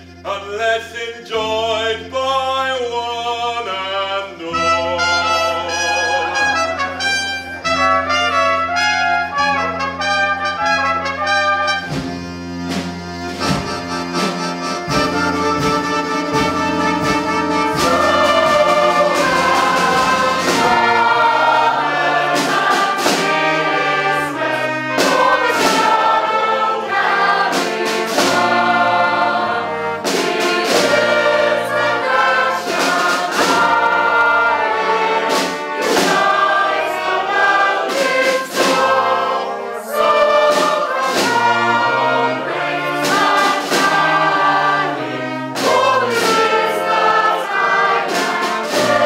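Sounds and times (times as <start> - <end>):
choir singing held chords: 0.0 - 49.0
brass accompaniment: 3.7 - 49.0.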